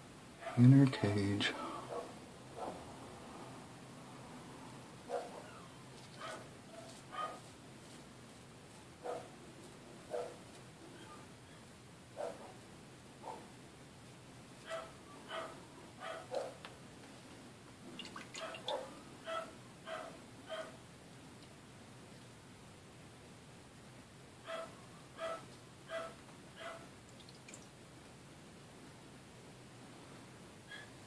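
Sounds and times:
puppy whimpering and yelping: 5.2 - 5.8, 11.0 - 11.6.

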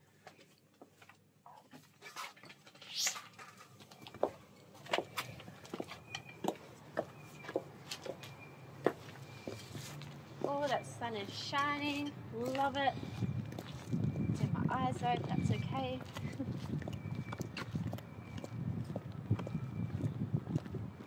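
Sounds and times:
high-heel footsteps clicking: 4.0 - 10.6, 16.0 - 21.0.

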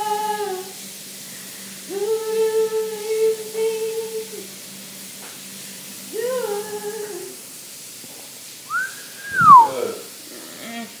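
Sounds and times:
whistled note: 8.7 - 9.9.

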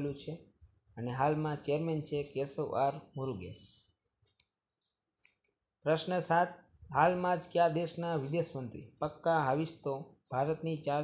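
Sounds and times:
man speaking: 0.0 - 4.0, 5.8 - 11.0.

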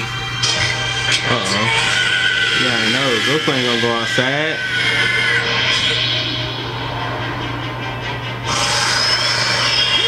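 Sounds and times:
noisy energy rush effect: 4.2 - 10.0.

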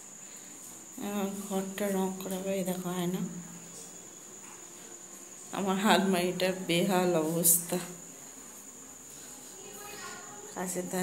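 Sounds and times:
background hiss: 0.0 - 11.0
woman talking: 1.0 - 3.4, 5.6 - 8.0, 10.6 - 11.0.

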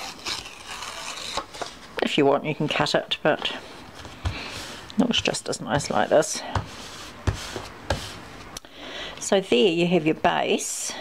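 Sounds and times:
paper rustling and sliding: 3.6 - 8.4.

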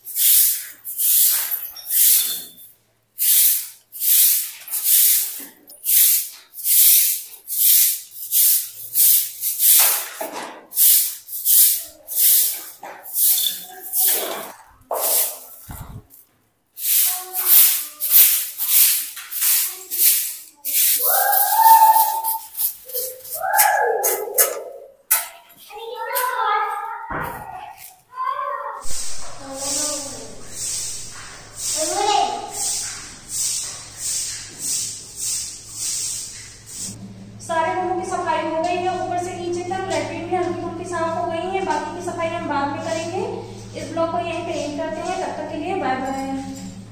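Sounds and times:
broom sweeping concrete floor: 0.0 - 28.0, 28.8 - 37.0, 42.8 - 46.9.

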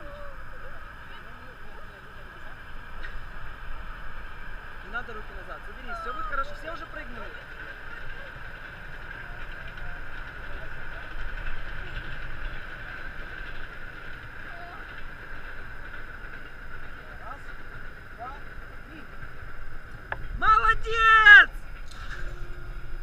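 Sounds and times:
faint high hum: 17.0 - 23.0.

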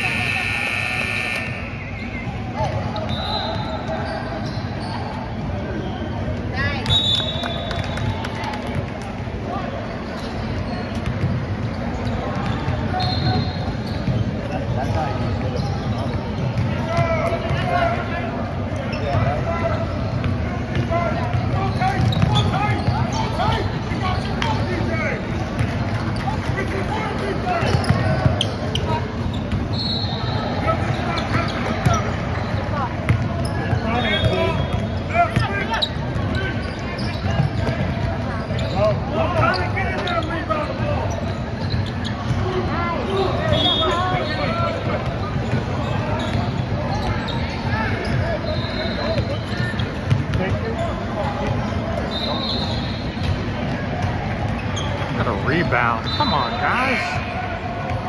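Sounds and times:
chatter and calls of people: 0.0 - 58.0
short high shoe squeaks: 3.0 - 5.2, 11.8 - 14.4, 21.6 - 25.1, 27.6 - 32.6, 33.4 - 42.4, 43.1 - 44.7, 45.4 - 50.2, 52.0 - 53.4, 54.6 - 55.2.

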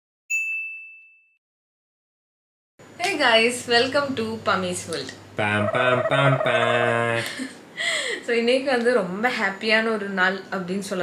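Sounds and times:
bright bell-like ding: 0.3 - 1.4.

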